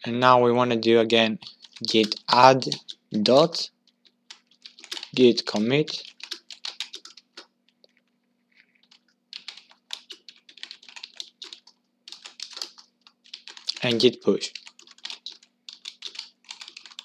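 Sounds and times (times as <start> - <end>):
typing on keyboard: 1.4 - 7.5, 8.7 - 17.0.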